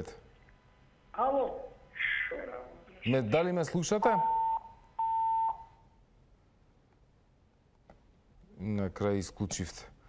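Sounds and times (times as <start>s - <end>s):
telephone busy tone beeps: 4.2s - 5.7s.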